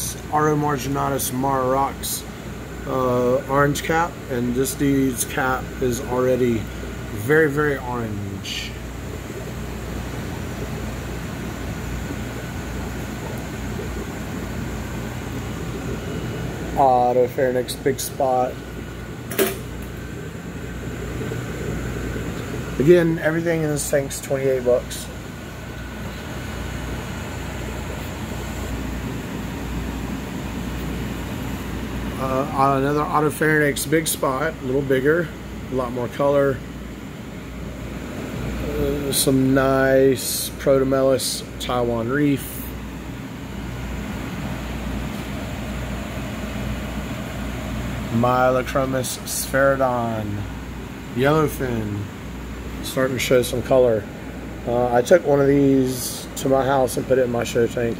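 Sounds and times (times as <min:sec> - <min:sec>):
low mechanical hum: 0:00.0 - 0:57.9.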